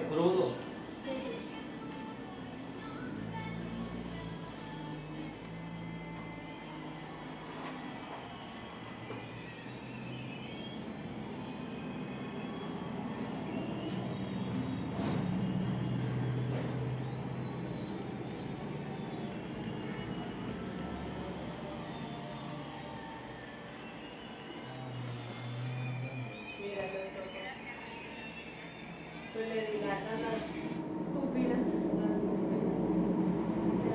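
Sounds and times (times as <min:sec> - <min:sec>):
road traffic rumble: 0:00.0 - 0:26.4
faint music: 0:00.0 - 0:33.9.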